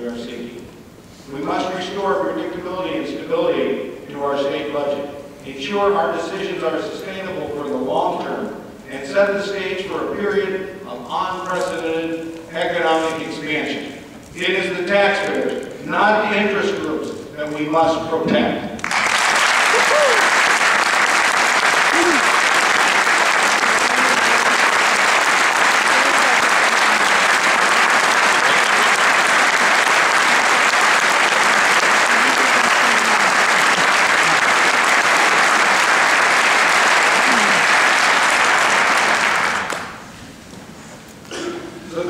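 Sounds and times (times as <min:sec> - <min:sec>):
audience applauding: 0:18.8 - 0:40.1.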